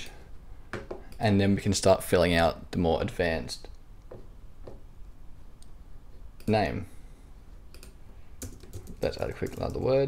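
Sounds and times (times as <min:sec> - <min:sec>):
typing on computer keyboard: 0:07.8 - 0:09.9.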